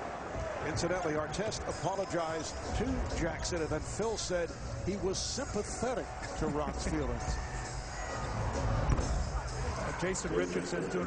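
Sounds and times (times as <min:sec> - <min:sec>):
crowd noise: 0:00.0 - 0:11.0
music over sound system: 0:00.8 - 0:11.0.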